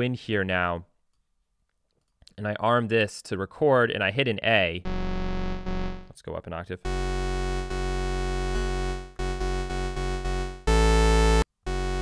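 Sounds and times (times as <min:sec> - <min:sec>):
synthesizer held note: 0:06.9 - 0:12.0.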